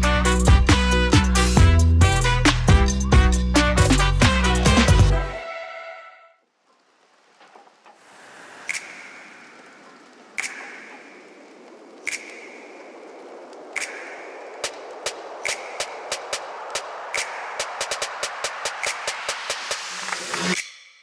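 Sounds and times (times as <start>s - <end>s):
rising swell of noise: 8.0s - 20.6s.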